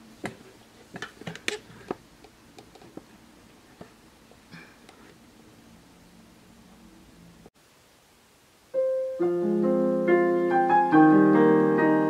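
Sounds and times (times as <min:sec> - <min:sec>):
faint hiss: 0:00.0 - 0:11.9.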